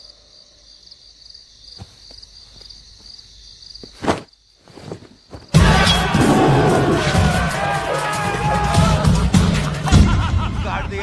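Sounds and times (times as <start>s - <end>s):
crickets chirping: 0.0s - 7.4s.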